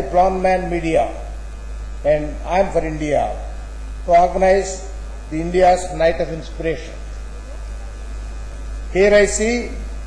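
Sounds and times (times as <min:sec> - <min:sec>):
low mains hum: 0:00.0 - 0:10.0.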